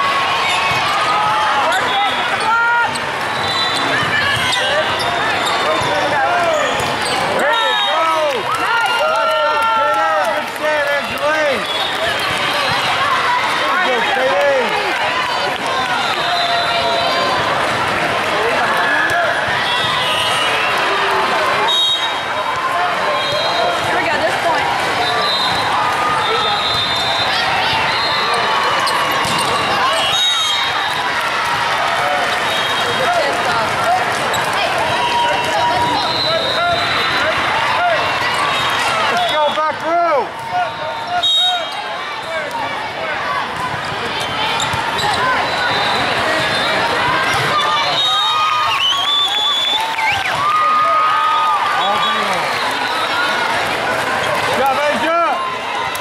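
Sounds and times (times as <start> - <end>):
voices talking and calling out: 0.0 - 56.0
volleyballs hit and bouncing: 0.4 - 8.8, 22.4 - 30.1, 30.8 - 39.1, 43.4 - 47.7
referee whistle blasts: 3.4 - 4.8, 7.4 - 8.3, 21.7 - 22.3, 25.0 - 28.3, 29.9 - 30.8, 35.4 - 37.0, 40.8 - 41.8, 47.5 - 50.4.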